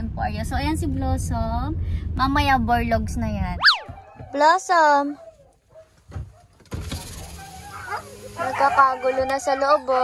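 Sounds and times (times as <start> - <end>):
power window motor running: 6.7 - 9.4.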